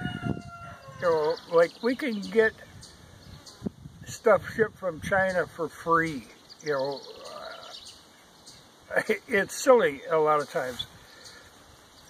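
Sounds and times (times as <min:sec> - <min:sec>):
man speaking: 0:01.0 - 0:02.6, 0:04.1 - 0:07.7, 0:08.9 - 0:10.9
faint bird chirps: 0:06.2 - 0:08.8.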